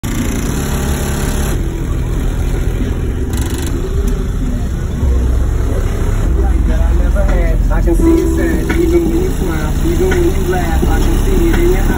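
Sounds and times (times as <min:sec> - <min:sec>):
deep bass music from subwoofers: 0:01.5 - 0:11.9
voices: 0:01.6 - 0:11.9.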